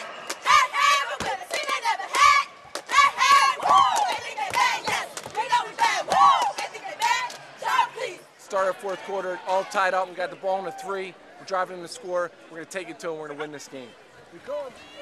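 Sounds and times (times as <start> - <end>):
girls shouting a chant: 0.4 - 8.2.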